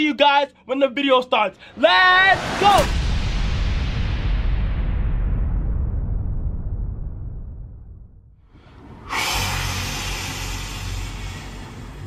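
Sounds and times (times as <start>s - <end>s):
low rumble: 1.6s - 12.0s
whoosh: 1.6s - 12.0s
loud steady hiss: 9.0s - 12.0s.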